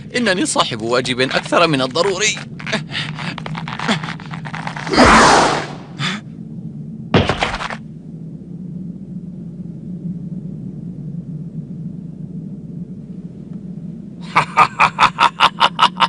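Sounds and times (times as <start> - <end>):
steady low rumble: 0.0 - 16.0.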